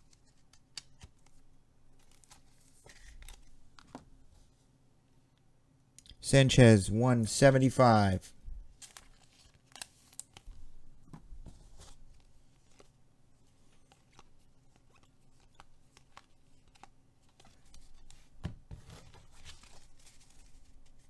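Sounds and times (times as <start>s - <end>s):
cards rustling and clicking: 0.0s - 1.4s, 2.0s - 4.1s, 8.8s - 10.6s, 11.5s - 21.0s.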